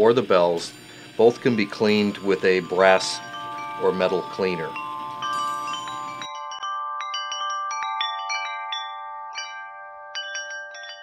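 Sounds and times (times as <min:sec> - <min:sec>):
small brass bells ringing: 0:00.5 - 0:11.0.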